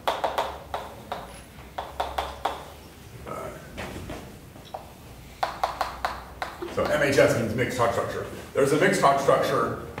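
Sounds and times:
chalk tapping on blackboard: 0.0s - 2.8s, 4.7s - 7.2s.

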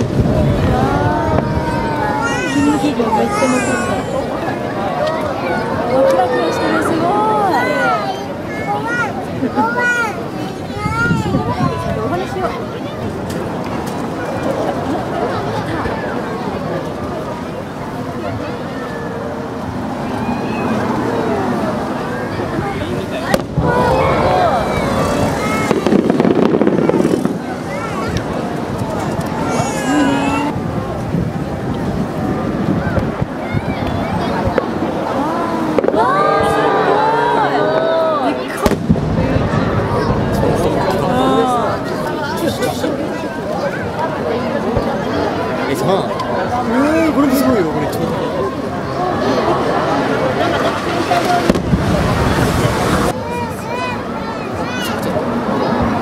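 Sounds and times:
crowd chatter: 0.0s - 56.0s
spectators talking and calling out: 0.0s - 56.0s
firework bang: 23.3s - 28.9s, 35.8s - 36.5s, 38.5s - 41.0s, 51.4s - 53.1s
rapid firework pops: 25.6s - 29.4s, 38.6s - 39.6s, 51.4s - 52.5s.

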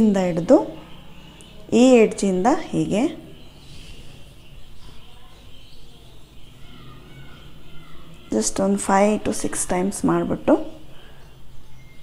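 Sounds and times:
woman speaking: 0.0s - 0.8s, 1.6s - 3.4s, 8.3s - 10.8s.

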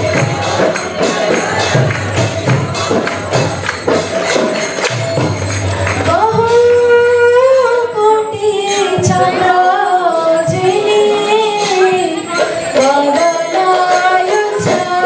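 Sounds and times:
jingling percussion: 0.0s - 15.0s
person singing devotional melody: 0.0s - 15.0s
rhythmic percussion strokes: 0.0s - 15.0s.

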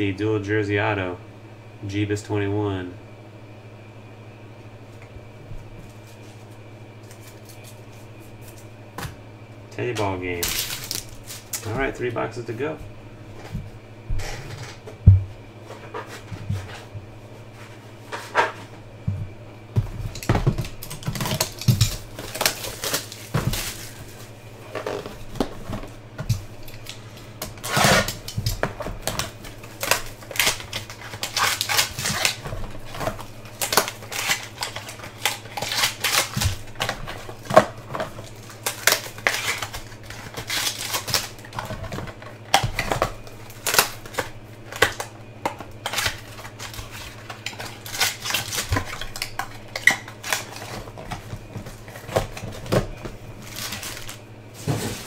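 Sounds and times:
steady low hum: 0.0s - 55.0s
cards and packaging handled: 19.9s - 55.0s.

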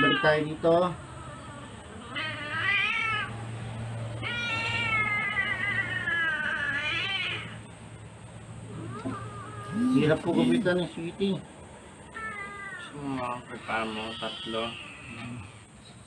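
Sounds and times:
cat yowling: 0.0s - 3.4s, 4.2s - 7.6s, 8.7s - 10.6s, 12.1s - 15.5s.

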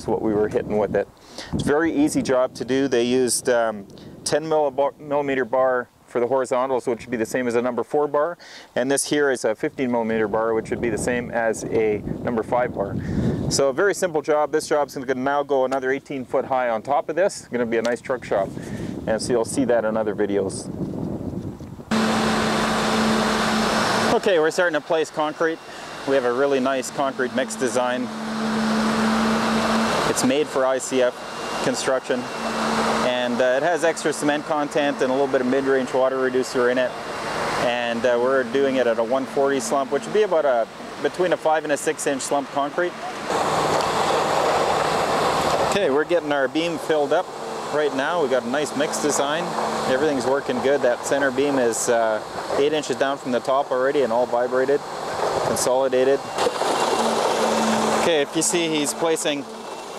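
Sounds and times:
pump truck low hum: 0.0s - 4.4s, 8.4s - 8.8s, 18.4s - 19.0s, 21.8s - 59.9s
concrete rushing through hose: 55.0s - 59.9s.

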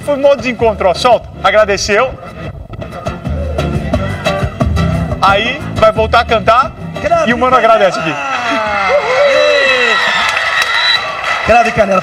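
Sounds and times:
live band music with bass: 0.0s - 8.0s.

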